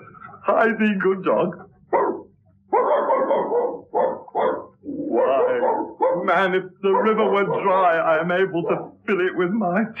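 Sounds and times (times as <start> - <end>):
man imitating dog cries: 5.0 - 6.3.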